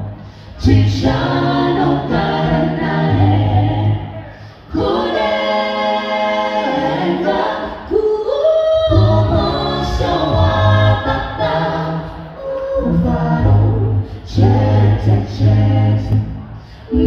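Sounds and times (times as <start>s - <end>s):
a cappella group singing in harmony: 0.0s - 17.0s.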